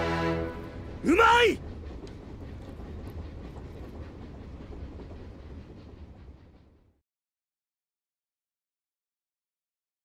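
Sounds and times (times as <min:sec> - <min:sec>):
train carriage rumbling on rails: 0:00.0 - 0:07.0.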